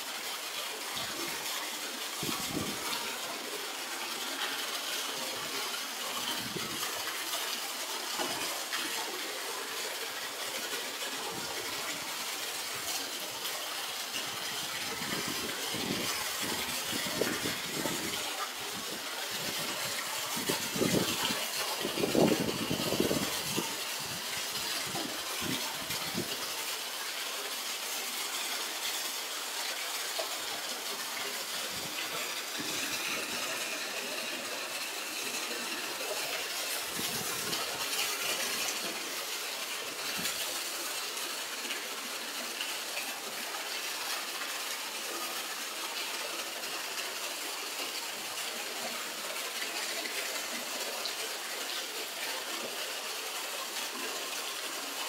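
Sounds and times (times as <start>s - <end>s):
water jet splashing into pool: 0.0s - 55.0s.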